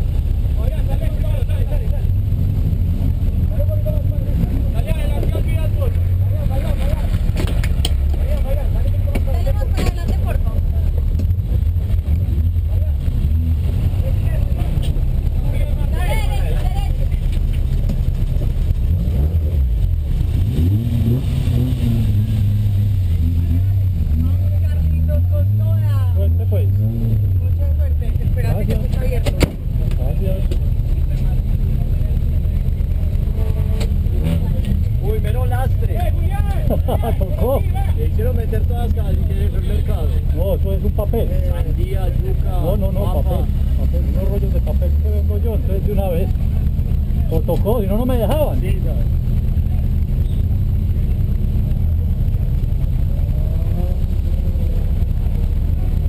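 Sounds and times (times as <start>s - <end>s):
voices chattering: 0.0s - 19.0s, 21.2s - 56.0s
car engine idling: 0.0s - 56.0s.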